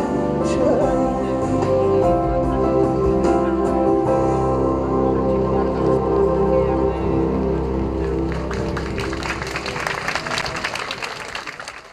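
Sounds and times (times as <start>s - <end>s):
audience applause: 7.8s - 11.9s.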